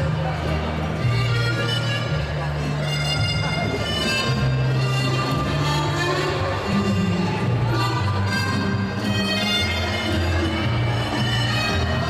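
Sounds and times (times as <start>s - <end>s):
ballroom dance music: 0.0s - 12.0s.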